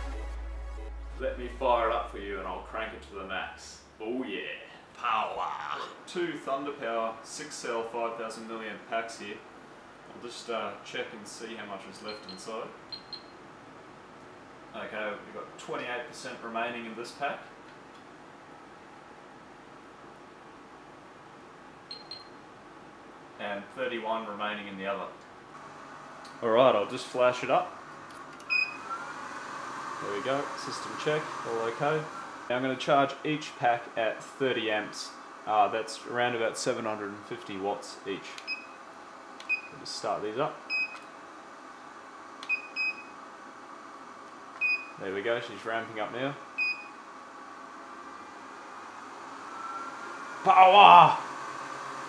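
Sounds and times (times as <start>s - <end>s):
cooling fan hiss: 0.0s - 52.0s
charger beeps: 49.5s - 50.0s.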